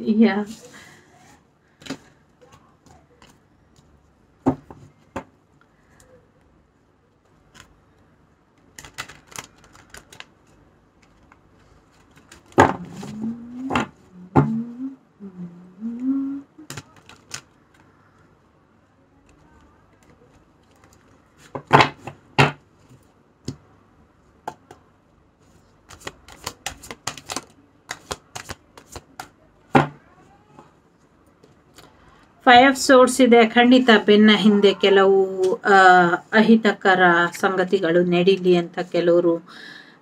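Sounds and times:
cards being shuffled: 7.2s - 7.8s, 8.6s - 13.9s, 16.6s - 17.9s, 25.4s - 29.4s.

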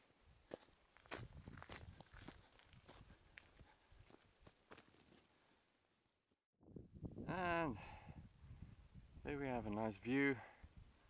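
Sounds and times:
footsteps on gravel: 0.0s - 5.3s.

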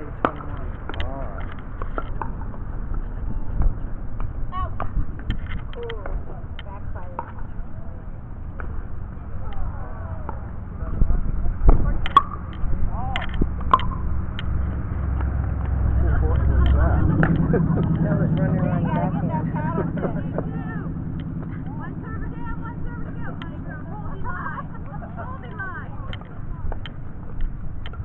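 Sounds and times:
faint voices: 0.0s - 28.0s
vehicle passing by: 0.0s - 28.0s.

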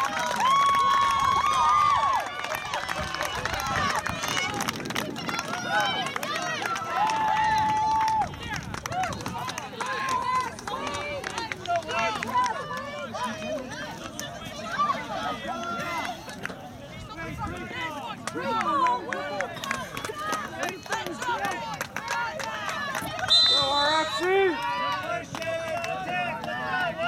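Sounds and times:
people shouting and calling: 17.0s - 27.0s.

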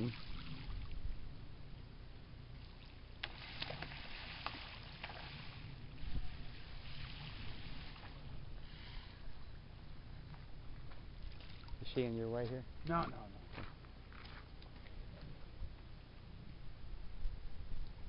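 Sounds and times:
water splashing and lapping: 2.6s - 8.4s, 11.2s - 11.8s, 14.1s - 15.2s.

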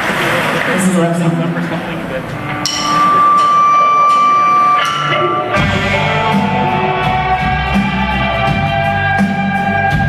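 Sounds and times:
steady high note: 1.7s - 9.1s.

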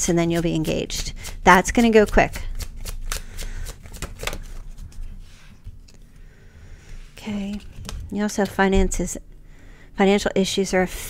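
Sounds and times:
cards being shuffled: 0.4s - 6.1s, 7.3s - 8.7s.

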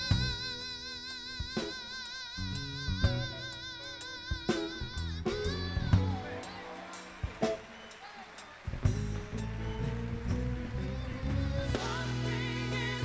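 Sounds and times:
man singing soul: 0.0s - 8.6s, 10.8s - 13.0s
live band playing: 0.0s - 13.0s.

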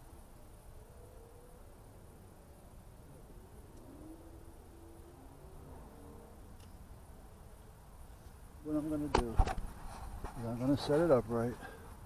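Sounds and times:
man speaking: 10.4s - 11.8s.

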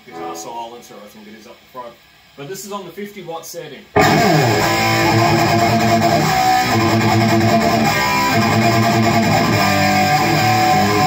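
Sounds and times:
distorted electric guitar riff: 4.0s - 11.0s.

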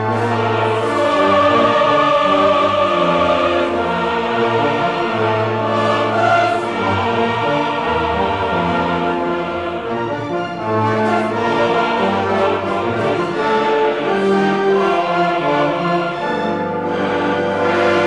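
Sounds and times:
choir singing held chords: 0.0s - 18.0s
symphony orchestra: 0.0s - 18.0s.

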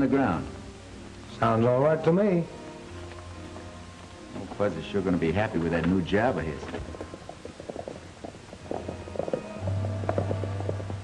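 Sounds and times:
old-time film score: 0.0s - 11.0s.

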